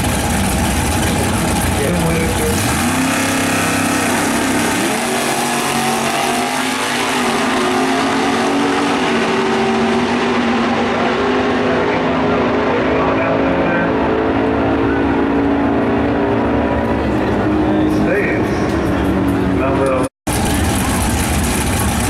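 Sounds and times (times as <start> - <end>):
drag racing cars accelerating: 0.0 - 22.0.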